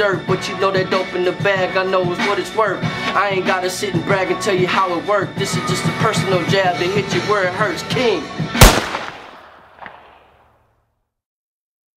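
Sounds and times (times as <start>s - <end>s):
echo of sharp bang: 8.6s - 10.4s
faint crack: 8.7s - 10.3s.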